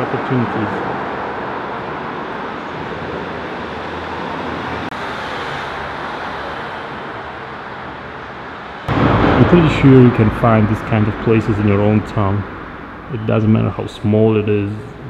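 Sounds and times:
urban background rumble and hiss: 0.0s - 15.0s.

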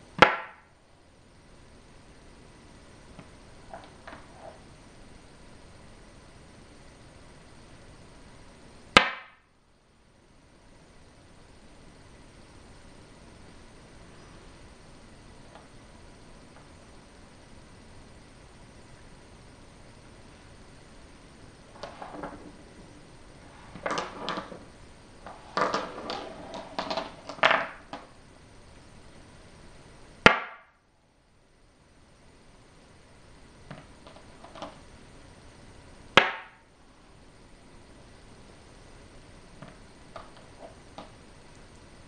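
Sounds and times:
stones clattering on wooden board: 23.7s - 24.6s, 25.3s - 28.0s.

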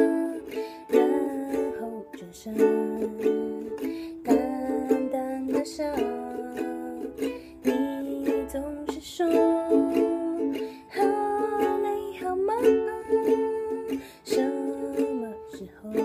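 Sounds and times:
ukulele strumming chords: 0.0s - 16.0s
woman singing softly: 0.0s - 16.0s.

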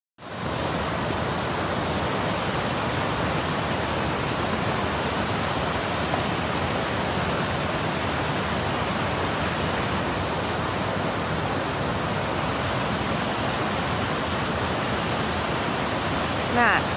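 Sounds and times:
waterfall rushing over rock: 0.2s - 16.9s.

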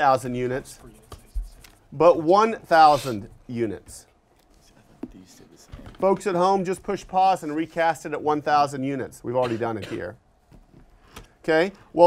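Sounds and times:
marker scratching on paper: 0.5s - 2.0s.

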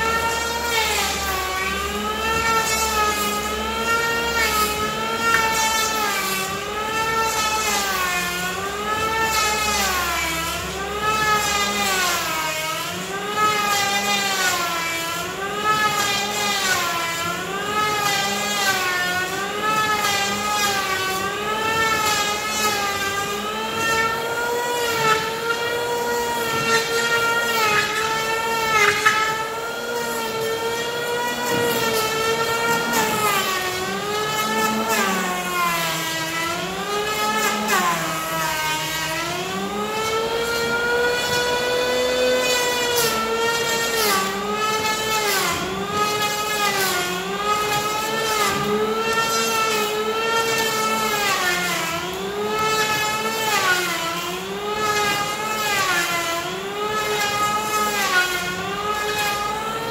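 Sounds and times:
electric hand planer whining: 0.0s - 59.9s.

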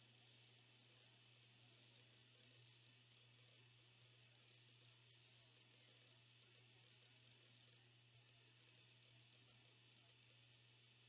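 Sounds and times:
faint low hum and hiss: 0.0s - 11.0s.

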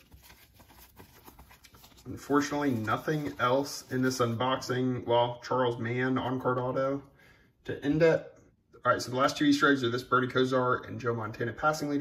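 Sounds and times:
cardboard cards rustling: 0.0s - 4.4s.

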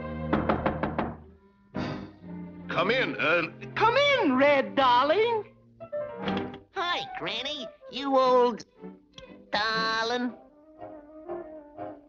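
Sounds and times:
orchestral cartoon music: 0.0s - 12.0s
knocks on a door: 0.3s - 1.2s.

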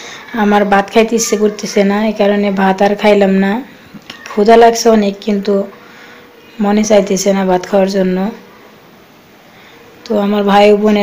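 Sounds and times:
woman speaking: 0.2s - 5.8s, 6.5s - 8.5s, 10.0s - 11.0s.

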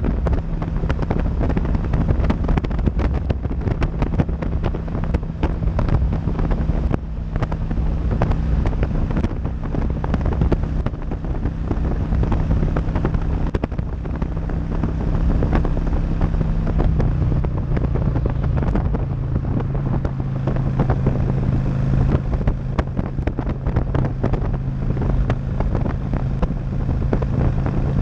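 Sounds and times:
motorcycle engine running: 0.0s - 28.0s
wind buffeting microphone: 0.0s - 28.0s.

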